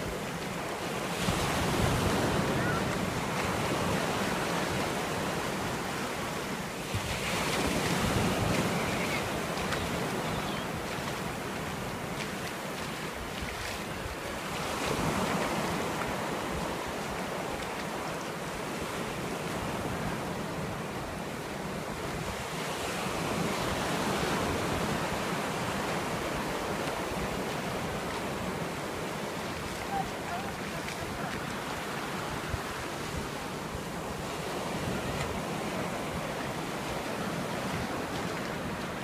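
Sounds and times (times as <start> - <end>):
ocean surf breaking on beach: 0.0 - 39.0.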